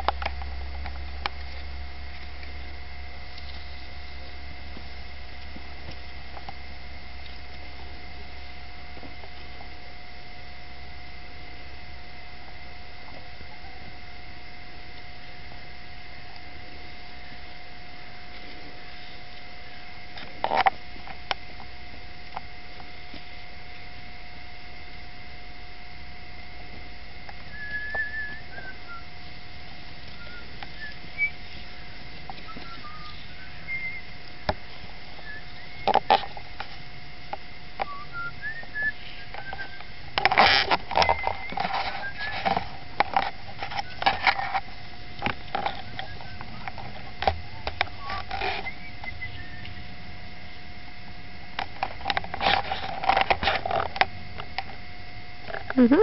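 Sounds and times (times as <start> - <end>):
steady hiss and hum: 0.0 - 56.0
small birds chirping: 27.4 - 36.4, 37.8 - 40.1, 45.4 - 50.6.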